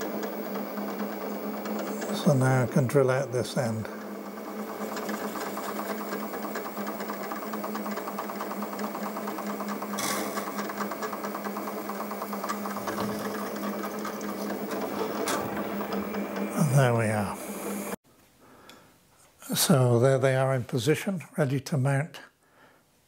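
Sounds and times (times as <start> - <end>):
milling machine cutting metal: 0.0 - 18.0.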